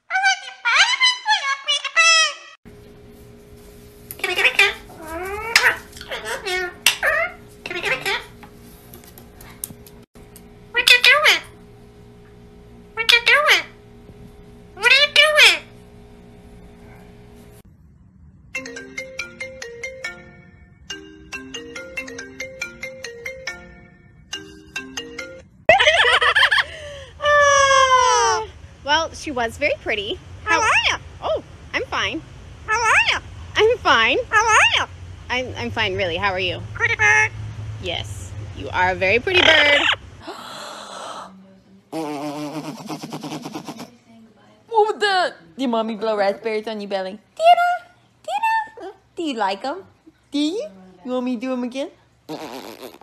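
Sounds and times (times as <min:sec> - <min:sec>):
parakeet talking: 0:00.0 - 0:02.6, 0:04.2 - 0:08.4, 0:10.7 - 0:11.6, 0:12.9 - 0:13.8, 0:14.8 - 0:15.7, 0:30.4 - 0:37.4, 0:38.7 - 0:40.1
parakeet high calls: 0:00.1 - 0:02.6, 0:04.2 - 0:08.3, 0:13.0 - 0:13.8, 0:14.8 - 0:15.7, 0:30.4 - 0:31.0, 0:32.7 - 0:33.2, 0:34.3 - 0:34.9, 0:39.3 - 0:40.1
phone ringtone marimba-like tune: 0:18.6 - 0:25.5.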